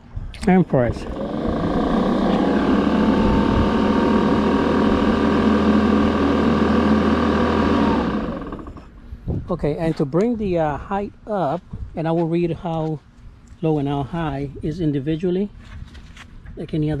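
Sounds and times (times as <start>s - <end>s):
electric lawn mower whining: 0.4s - 9.0s.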